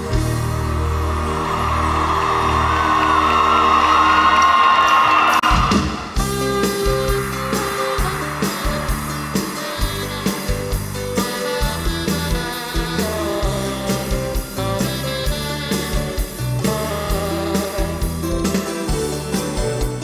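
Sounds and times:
crowd cheering: 0:00.0 - 0:13.4
live band playing: 0:00.0 - 0:20.0.

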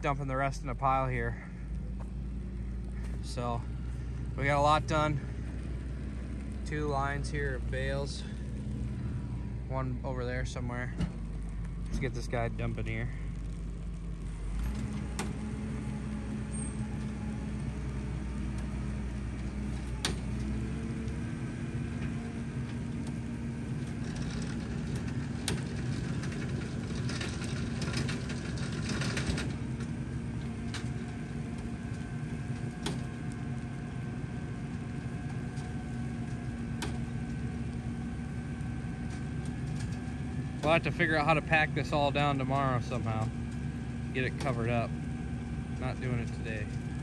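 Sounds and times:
tractor engine running: 0:00.0 - 0:47.0.

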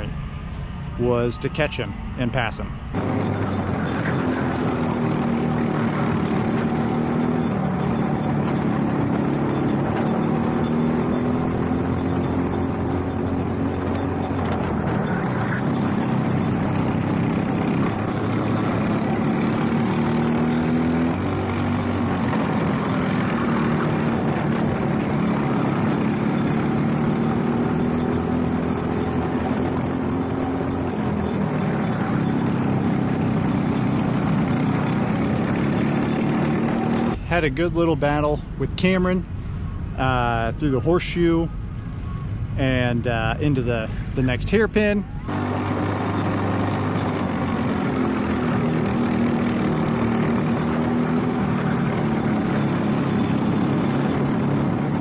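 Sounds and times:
kart engines racing: 0:02.9 - 0:37.2, 0:41.4 - 0:55.0.

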